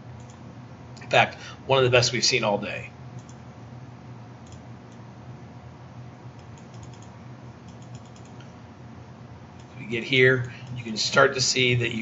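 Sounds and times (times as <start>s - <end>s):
low electrical hum: 0.0s - 12.0s
computer keyboard clicks: 0.2s - 0.4s, 3.2s - 3.4s, 4.4s - 4.6s, 6.4s - 7.1s, 7.7s - 8.4s.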